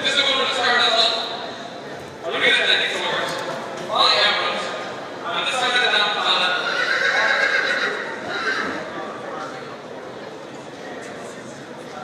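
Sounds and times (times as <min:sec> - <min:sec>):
horse whinnying: 0:06.6 - 0:08.9.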